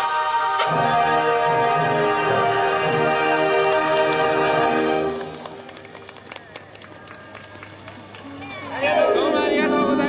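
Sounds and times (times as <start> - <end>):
parade music: 0.0 - 6.4, 8.8 - 10.0
crowd voices: 2.3 - 10.0
person singing: 8.9 - 10.0.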